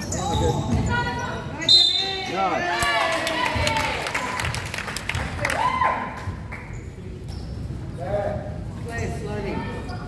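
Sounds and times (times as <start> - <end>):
spectators clapping: 3.0 - 6.7.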